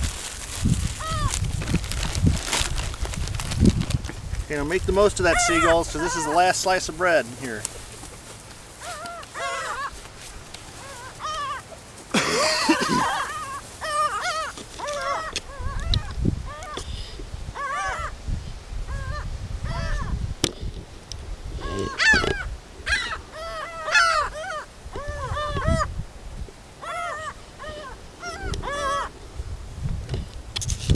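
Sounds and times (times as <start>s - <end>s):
gulls calling: 1.0s - 1.4s, 4.5s - 18.2s, 18.9s - 20.2s, 21.5s - 26.0s, 26.7s - 29.4s.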